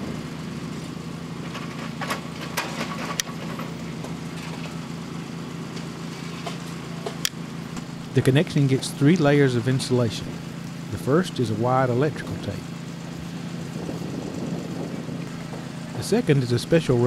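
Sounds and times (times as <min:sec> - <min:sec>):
engine idling: 0:00.0 - 0:17.0.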